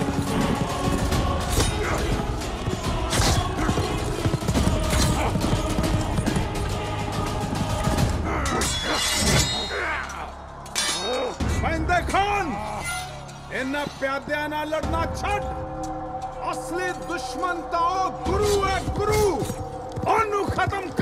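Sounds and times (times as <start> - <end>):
men shouting: 0.0 - 11.6
background music score: 0.0 - 21.0
clashing weapons and impacts: 8.2 - 11.4.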